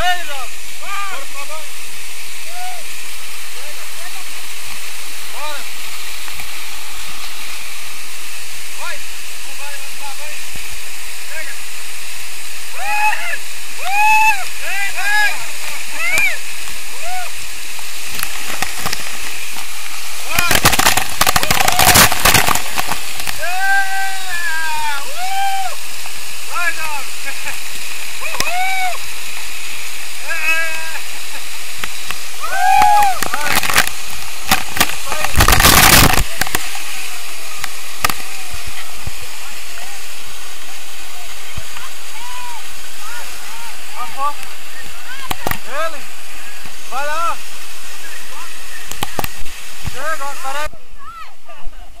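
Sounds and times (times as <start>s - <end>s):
waterfall rushing: 0.0s - 52.0s.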